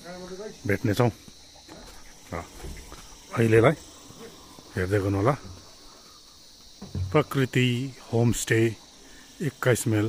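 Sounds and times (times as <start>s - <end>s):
man speaking: 0.0s - 1.2s, 3.3s - 5.4s, 7.0s - 8.8s, 9.4s - 10.0s
high-pitched insect chorus: 0.0s - 10.0s.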